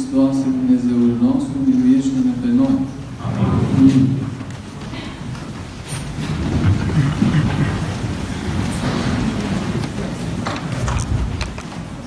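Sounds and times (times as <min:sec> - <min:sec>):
muffled low rumbling and shuffling: 0:00.3 - 0:12.0.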